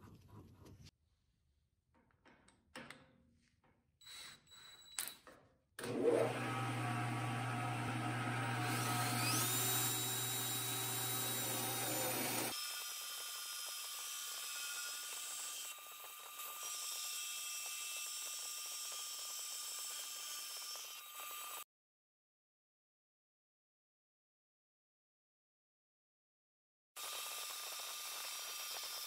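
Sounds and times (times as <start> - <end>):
lathe running with whine: 5.9 - 12.5.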